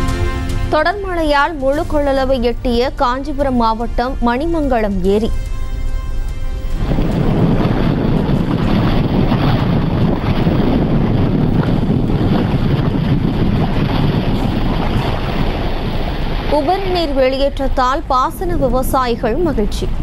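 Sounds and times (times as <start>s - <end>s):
voice: 0.7s - 5.4s, 16.5s - 20.0s
wind buffeting microphone: 6.6s - 20.0s
water rushing over weir: 6.8s - 20.0s.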